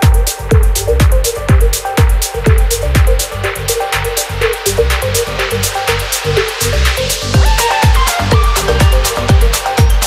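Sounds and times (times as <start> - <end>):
deep bassline: 0.0 - 10.0
hi-hats ticking: 0.0 - 10.0
kick drum: 0.0 - 10.0.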